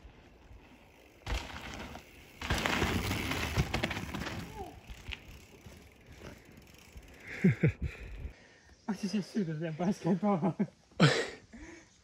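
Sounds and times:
bike tyres rolling over dirt: 0:00.0 - 0:08.2
bike knocking over bumps: 0:01.2 - 0:06.4.

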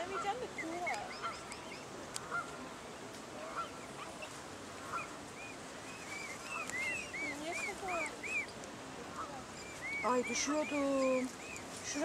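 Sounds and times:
cygnets peeping: 0:00.0 - 0:12.0.

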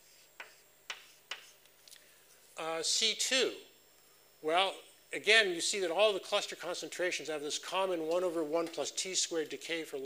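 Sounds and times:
chalk ticking on a blackboard: 0:00.1 - 0:01.7.

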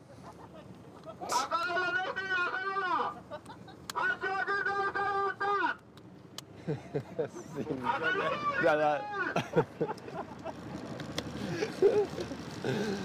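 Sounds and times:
man shouting long calls: 0:01.2 - 0:03.2, 0:04.0 - 0:05.8, 0:07.8 - 0:09.4.

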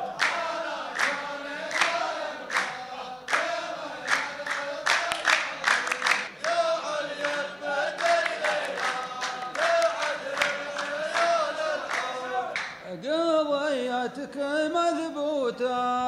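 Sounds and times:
men chanting in unison: 0:00.0 - 0:15.7
hand claps on a steady beat: 0:00.1 - 0:12.8.

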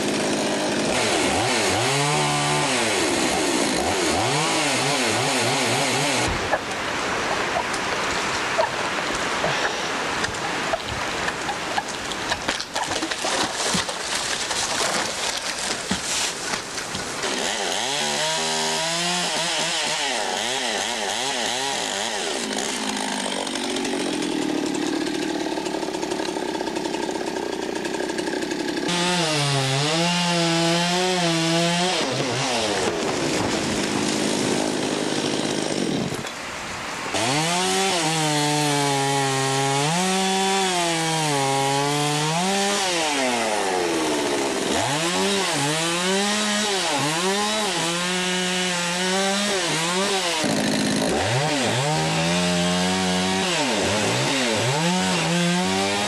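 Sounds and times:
chainsaw cutting and revving: 0:00.0 - 0:36.4, 0:37.1 - 0:56.0.

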